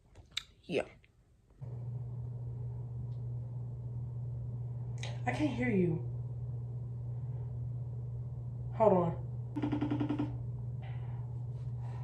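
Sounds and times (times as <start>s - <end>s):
exhaust fan humming: 1.6s - 12.0s.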